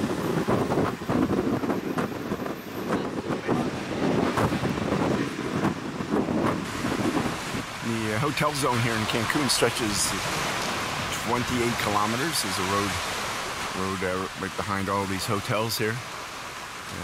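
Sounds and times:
wind buffeting microphone: 0.0 - 14.5.

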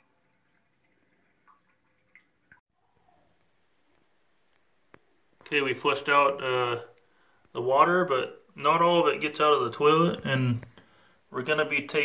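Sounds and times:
water dripping in toilet: 0.0 - 2.6.

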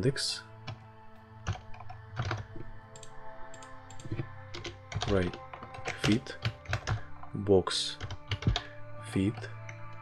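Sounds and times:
soft background music: 0.0 - 10.0
computer keyboard typing: 1.5 - 7.1, 8.0 - 8.7.

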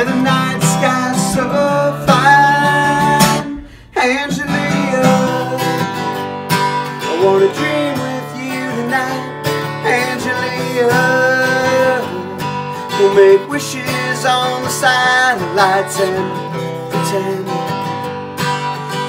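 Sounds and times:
man singing: 0.0 - 17.9
strummed acoustic guitar: 0.0 - 19.0.

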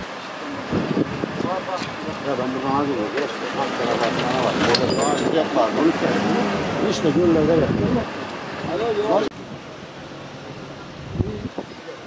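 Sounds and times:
people talking: 1.3 - 9.4, 10.6 - 12.0.

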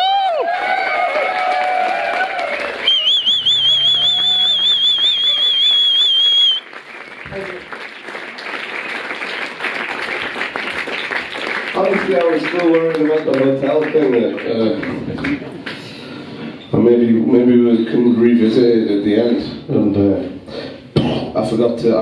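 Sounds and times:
audience applauding: 0.0 - 16.0.

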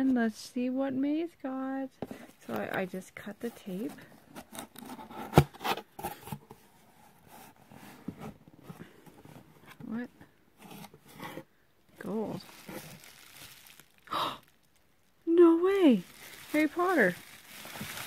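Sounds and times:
cardboard and bubble wrap rustling: 2.0 - 18.0.

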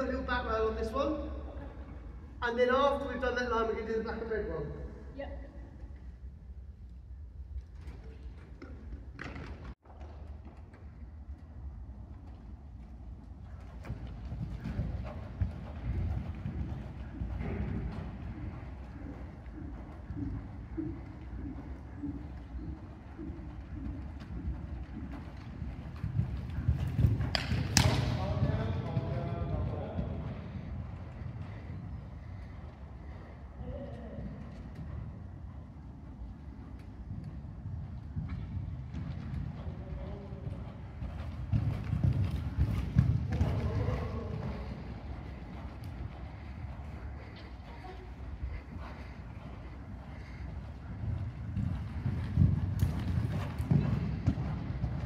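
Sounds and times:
horse hoofbeats on sand: 9.2 - 55.0.

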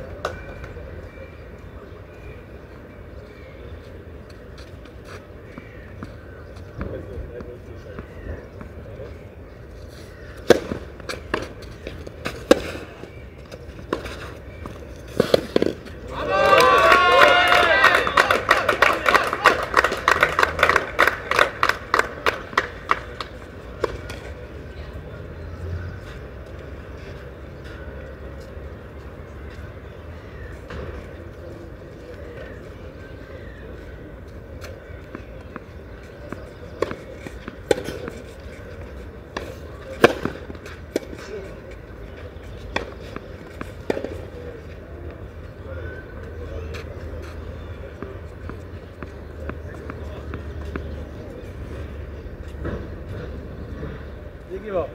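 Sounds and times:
tennis ball hits: 10.4 - 12.9, 15.1 - 16.2, 34.6 - 41.5, 42.6 - 44.5
tennis ball bouncing: 10.4 - 16.0, 34.6 - 45.2, 47.9 - 51.8
spectators calling out: 16.1 - 19.8
spectators clapping: 16.2 - 23.3.

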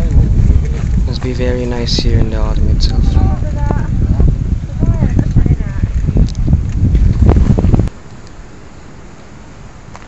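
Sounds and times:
wind buffeting microphone: 0.0 - 8.0.

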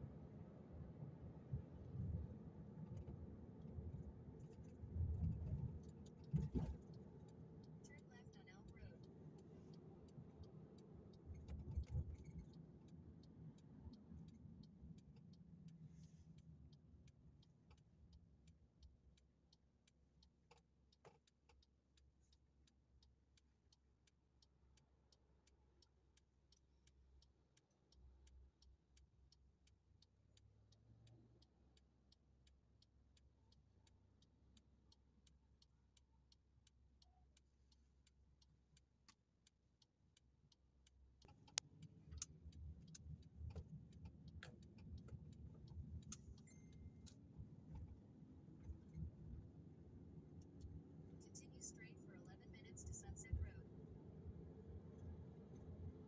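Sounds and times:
road rumble inside car: 0.0 - 56.0
steady ticking: 1.5 - 56.0.

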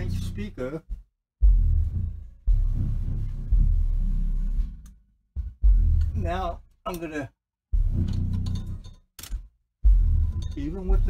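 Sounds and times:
subwoofer playing deep bass: 0.0 - 0.6, 1.4 - 6.7, 7.8 - 8.8, 9.8 - 11.0.

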